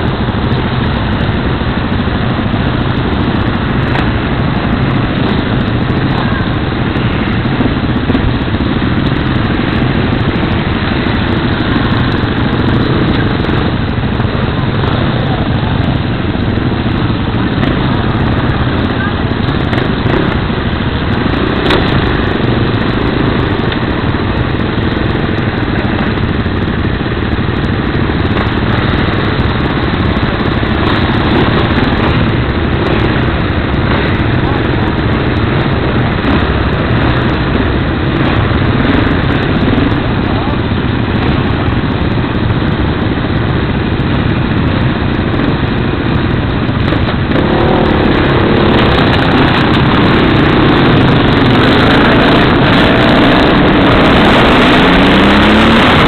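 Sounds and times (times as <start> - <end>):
motorcycle engine idling and revving: 0.0 - 56.0.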